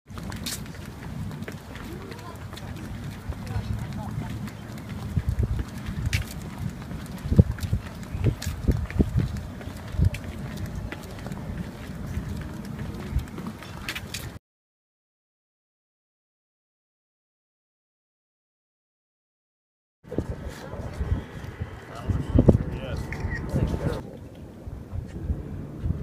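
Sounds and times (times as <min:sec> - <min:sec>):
footsteps on wooden deck: 0:00.1 - 0:14.4
wind rumble on microphone: 0:00.1 - 0:14.4, 0:20.0 - 0:26.0.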